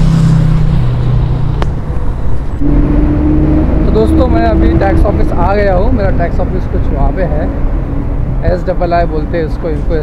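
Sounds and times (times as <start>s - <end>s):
motorcycle engine: 0.0s - 8.3s
low engine hum: 0.0s - 8.6s
vehicle engines passing: 0.0s - 10.0s
higher steady hum: 2.4s - 8.2s.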